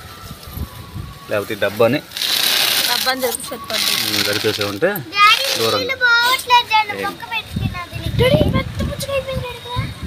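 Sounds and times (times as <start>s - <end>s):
people talking: 2.8s - 10.0s
child's high-pitched voice: 5.1s - 10.0s.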